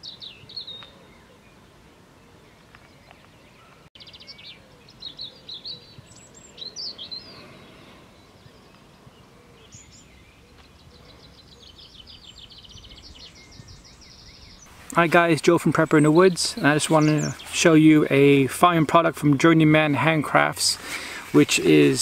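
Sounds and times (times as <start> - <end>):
outdoor background hiss: 0.0 - 22.0
small birds chirping: 0.0 - 22.0.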